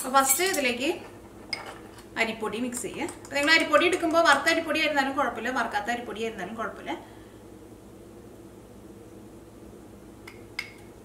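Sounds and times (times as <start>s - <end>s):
kitchenware clink: 0.0s - 0.8s, 1.5s - 1.9s
woman speaking: 0.0s - 1.1s, 2.2s - 7.0s.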